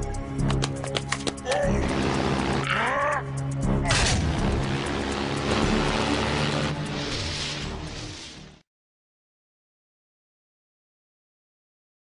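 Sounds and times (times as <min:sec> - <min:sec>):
cartoon music: 0:01.4 - 0:04.1
airship engines droning: 0:01.5 - 0:08.0
loud burst: 0:03.9 - 0:07.3
rushing noise: 0:03.9 - 0:08.5.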